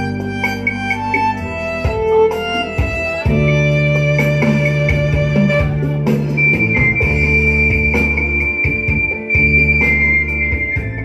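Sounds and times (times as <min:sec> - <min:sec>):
high piercing melody: 0:05.4 - 0:11.0.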